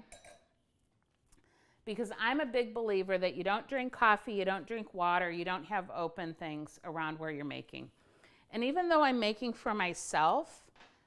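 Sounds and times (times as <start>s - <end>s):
wine glass clinking on stone: 0.0s - 0.5s.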